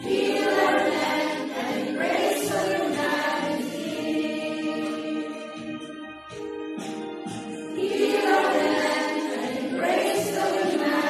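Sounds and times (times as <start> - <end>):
choir singing a hymn: 0.0 - 5.9, 7.7 - 11.0.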